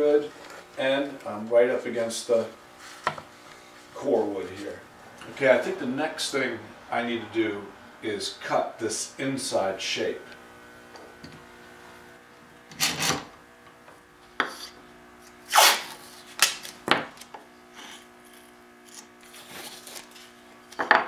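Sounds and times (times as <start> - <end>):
faint steady hum: 0.0 - 21.0
tape ripping off roll: 15.5 - 17.3.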